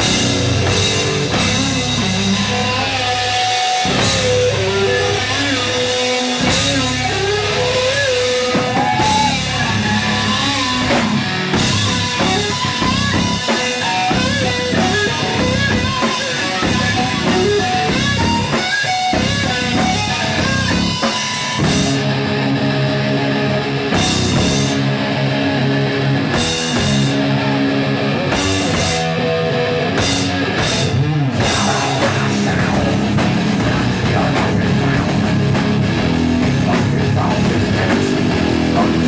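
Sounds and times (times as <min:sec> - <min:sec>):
bass guitar: 0:00.0 - 0:39.0
distorted electric guitar: 0:00.0 - 0:39.0
drum kit: 0:00.0 - 0:39.0.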